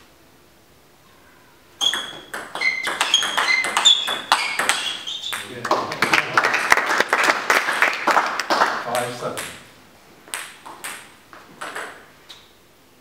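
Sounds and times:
table tennis ball bouncing: 0:01.8 - 0:05.9, 0:08.9 - 0:12.4.

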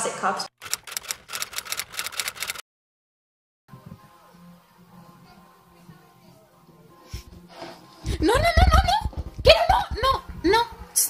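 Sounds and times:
typewriter key clicks: 0:00.6 - 0:02.6
faint television sound with music: 0:03.7 - 0:11.0.

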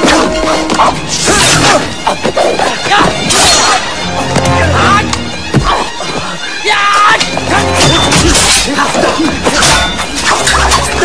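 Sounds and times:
film music with bagpipe-like sound: 0:00.0 - 0:11.0.

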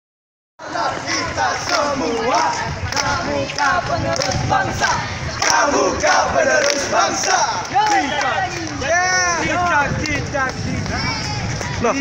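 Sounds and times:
men shouting a group cheer: 0:04.8 - 0:09.6.

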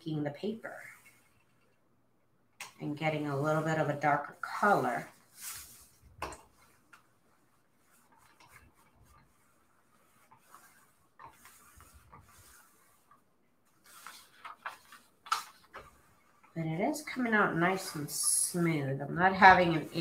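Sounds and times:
iron sliding over paper: 0:03.0 - 0:20.0.

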